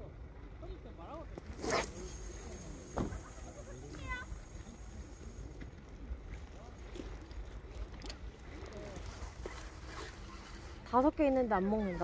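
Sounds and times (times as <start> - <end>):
line running off reel: 1.4 - 6.0
fishing rod swish: 1.5 - 3.2.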